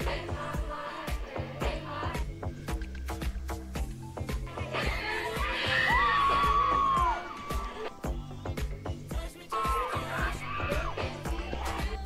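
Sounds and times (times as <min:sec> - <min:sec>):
live pop music with drums: 0:00.0 - 0:12.0
crowd cheering: 0:04.6 - 0:08.0
singer holding high notes: 0:04.6 - 0:08.0.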